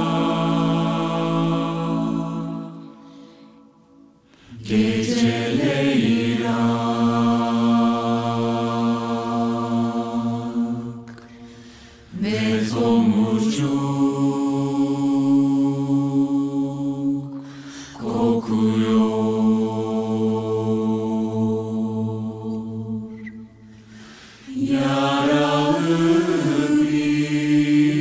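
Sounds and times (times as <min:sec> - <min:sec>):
a cappella choir singing chords: 0:00.0 - 0:28.0.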